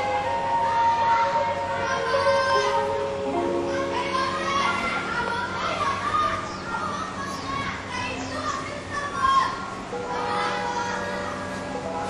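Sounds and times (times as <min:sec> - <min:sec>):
background music with held notes: 0:00.0 - 0:05.8, 0:09.9 - 0:12.0
children chattering and calling out: 0:00.0 - 0:12.0.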